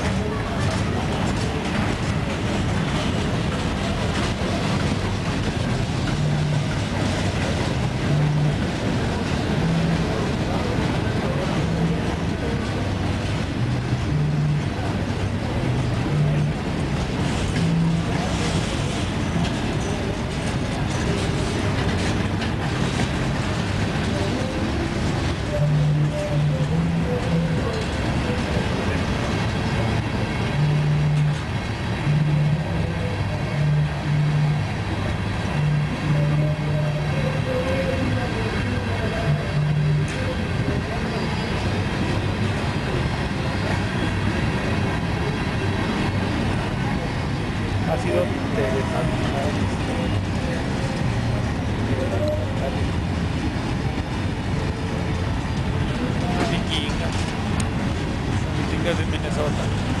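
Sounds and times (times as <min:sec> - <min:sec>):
train wheels on rails: 0:00.0 - 1:00.0.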